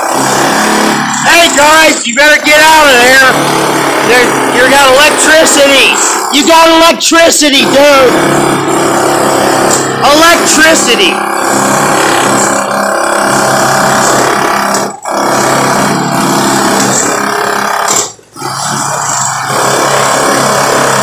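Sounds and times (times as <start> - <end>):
construction machinery buzzing drone: 0.0 - 21.0.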